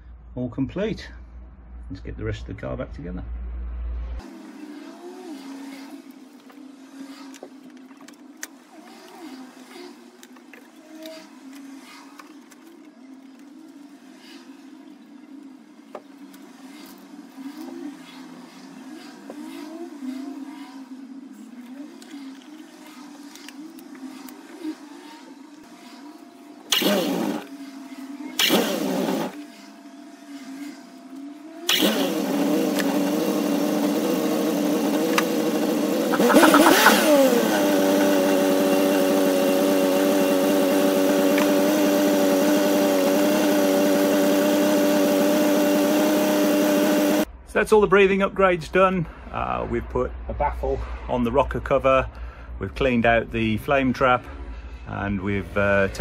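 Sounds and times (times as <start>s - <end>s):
car engine revving: 3.3s - 47.3s
car engine cranking: 26.6s - 27.5s, 28.3s - 29.4s, 31.5s - 47.3s.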